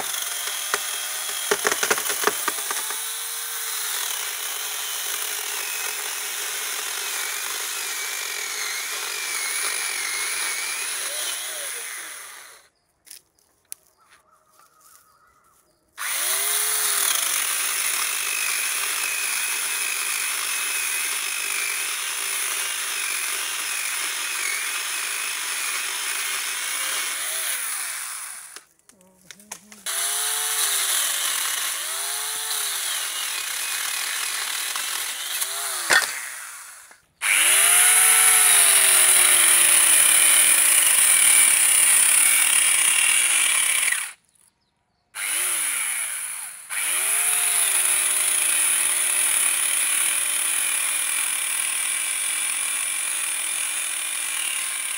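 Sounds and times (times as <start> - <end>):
electric chainsaw cutting wood: 0.0 - 12.7, 16.0 - 28.7, 29.7 - 44.2, 45.2 - 54.9.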